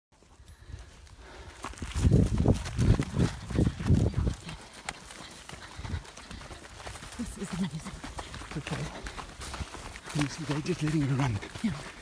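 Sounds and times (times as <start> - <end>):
running footsteps on dry ground: 0.1 - 12.0.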